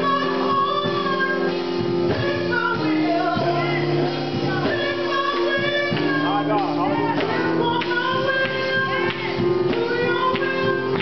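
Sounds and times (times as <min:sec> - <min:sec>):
woman singing through a pa: 0:00.0 - 0:11.0.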